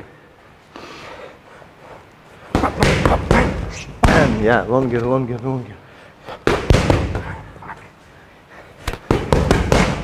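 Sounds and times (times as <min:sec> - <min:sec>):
boxing gloves hitting mitts: 0:02.5 - 0:04.7, 0:06.4 - 0:07.4, 0:08.8 - 0:10.0.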